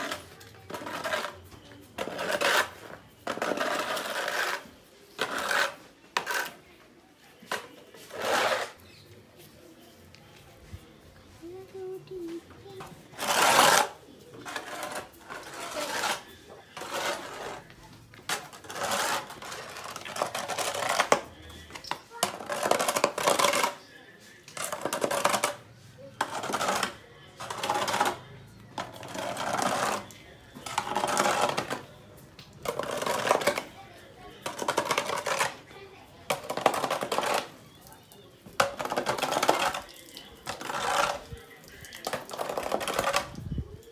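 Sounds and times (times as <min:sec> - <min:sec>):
broom scraping wet dung on concrete: 0:00.0 - 0:06.7, 0:07.4 - 0:11.4, 0:13.1 - 0:23.9, 0:24.5 - 0:28.2, 0:28.8 - 0:31.9, 0:32.5 - 0:33.7, 0:34.3 - 0:35.7, 0:36.3 - 0:43.9.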